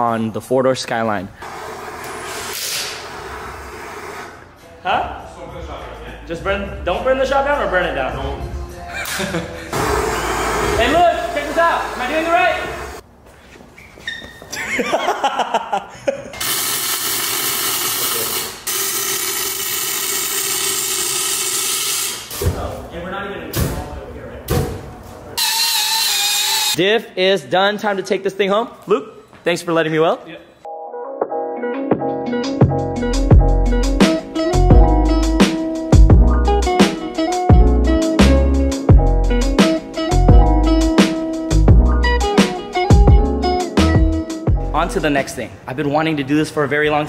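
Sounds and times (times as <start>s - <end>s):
gas torch hissing: 1.4s - 4.4s, 9.7s - 13.0s
power tool whining: 9.7s - 13.0s, 25.4s - 26.8s.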